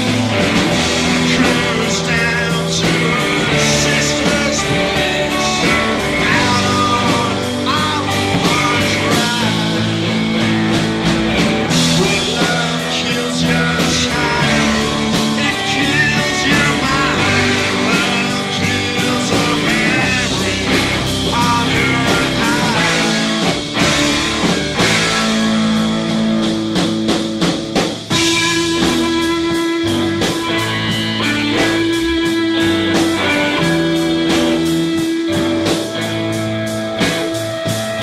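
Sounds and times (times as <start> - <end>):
drum kit: 0.0 - 38.0
electric guitar bent notes: 0.0 - 38.0.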